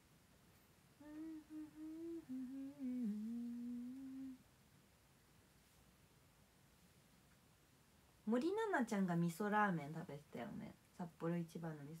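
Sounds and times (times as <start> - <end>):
woman humming: 1.0 - 4.4.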